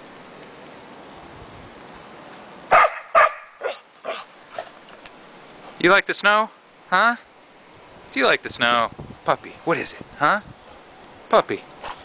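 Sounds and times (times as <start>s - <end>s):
steady hiss: 0.0s - 2.7s, 3.5s - 12.0s
dog barking: 2.7s - 4.7s.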